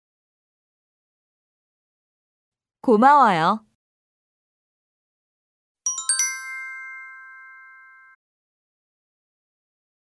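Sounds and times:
bright metallic chime: 0:05.9 - 0:08.2.

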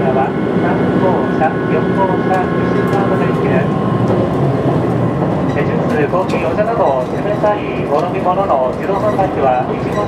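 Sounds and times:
train announcement over speakers: 0:00.0 - 0:04.0, 0:05.4 - 0:10.0
diesel train running noise: 0:00.0 - 0:10.0.

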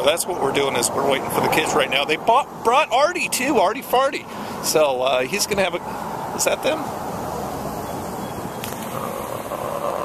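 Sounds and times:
car passing: 0:04.2 - 0:10.0.

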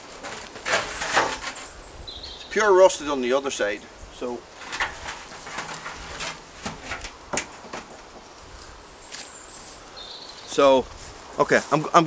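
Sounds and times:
sheet metal knocks and scrapes: 0:00.0 - 0:01.7, 0:04.6 - 0:08.0.

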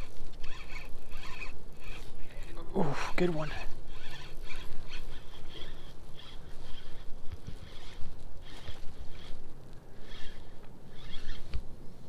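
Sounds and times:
fishing reel cranking clicks: 0:00.0 - 0:02.6, 0:03.2 - 0:09.4, 0:10.0 - 0:11.5.

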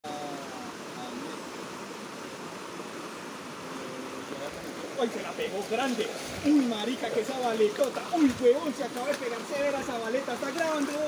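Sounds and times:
creek water rushing past rocks: 0:00.1 - 0:11.0.

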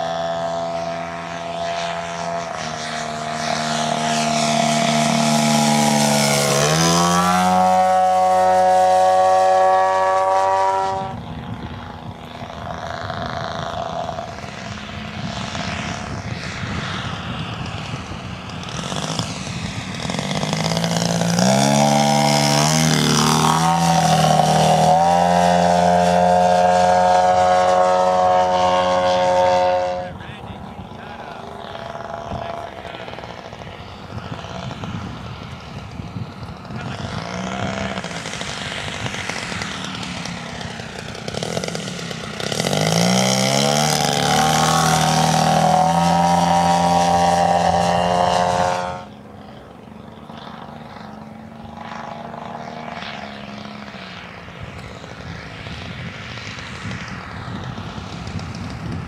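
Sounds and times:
model plane engine: 0:00.0 - 0:59.0.

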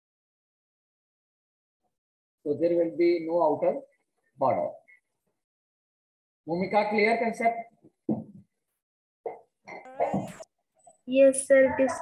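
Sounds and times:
voice over online call: 0:09.3 - 0:12.0.

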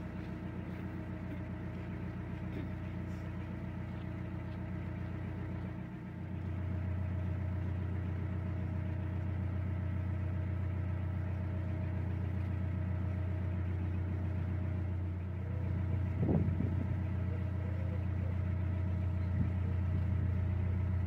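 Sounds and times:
boat diesel engine humming: 0:00.0 - 0:21.0.

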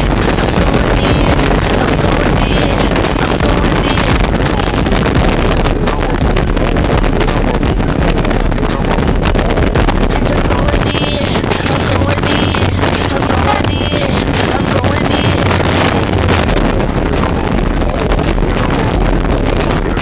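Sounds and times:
outboard motors roaring: 0:00.0 - 0:20.0
rush of water: 0:00.0 - 0:20.0
wind buffeting microphone: 0:00.0 - 0:20.0.

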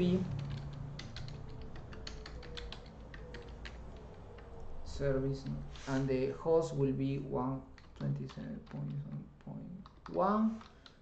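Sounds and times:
keyboard keystroke clicks: 0:00.4 - 0:04.6.

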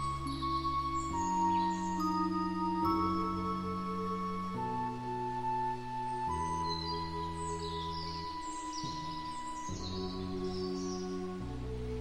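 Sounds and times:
ambient music with held chords: 0:00.0 - 0:12.0
birds chirping: 0:00.0 - 0:12.0.

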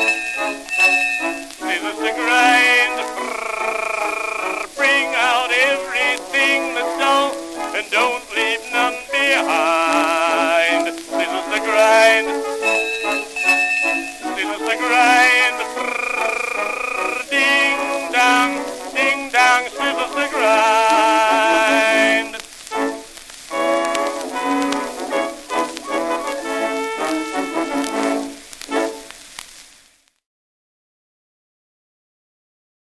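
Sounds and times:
small orchestra on old recording: 0:00.0 - 0:29.6.

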